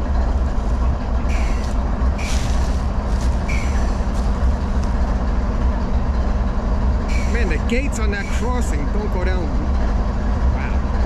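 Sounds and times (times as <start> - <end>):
locomotive engine idling: 0.0 - 11.0.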